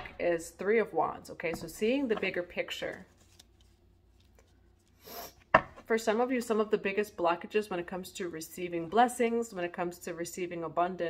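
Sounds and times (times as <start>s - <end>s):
cards rustling: 2.9s - 5.1s
card deck knocking on wooden table: 5.5s - 5.8s.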